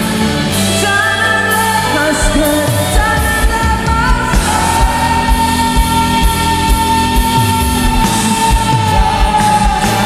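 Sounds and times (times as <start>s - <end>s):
band accompaniment: 0.0s - 10.0s
woman singing into microphone: 0.6s - 10.0s.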